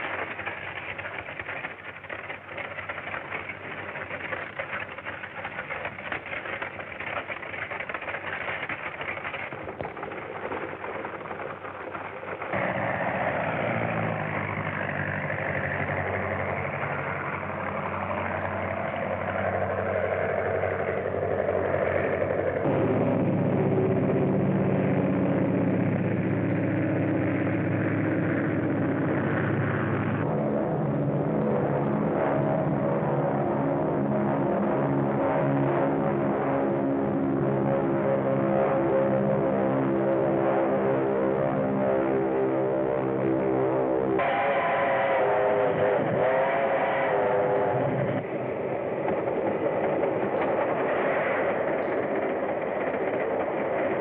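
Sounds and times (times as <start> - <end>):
motor engines running: 0.0 - 54.0.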